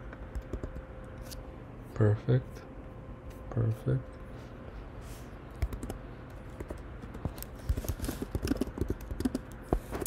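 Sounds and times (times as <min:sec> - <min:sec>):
computer keyboard key clicks: 0:05.6 - 0:06.0, 0:08.2 - 0:09.6.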